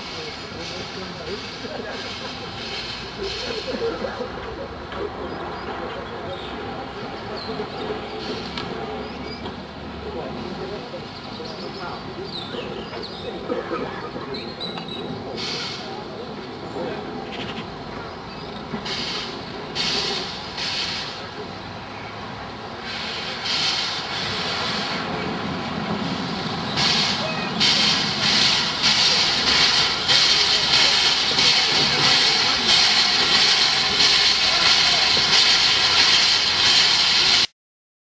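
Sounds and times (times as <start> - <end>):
loud steam hiss: 0.0 - 4.4, 6.2 - 13.5, 14.5 - 16.9, 17.7 - 37.5
steam locomotive exhaust puffs: 0.0 - 4.4, 14.7 - 16.2, 18.6 - 21.5, 22.8 - 37.5.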